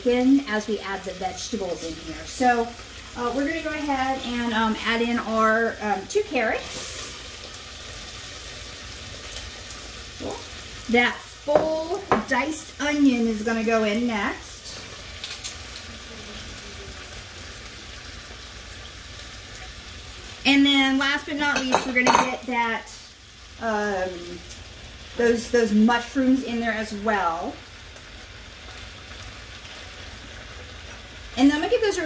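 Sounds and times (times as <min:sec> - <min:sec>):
vegetables sizzling in fat: 0:00.0 - 0:32.0.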